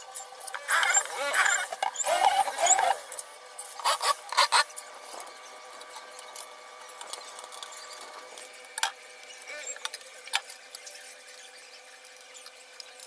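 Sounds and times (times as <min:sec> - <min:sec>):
electric drill whining into wood: 0:00.4 - 0:04.7.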